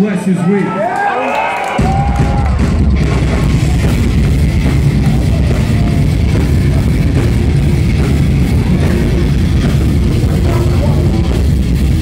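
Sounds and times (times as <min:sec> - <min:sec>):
hardcore band playing live: 0:01.4 - 0:12.0.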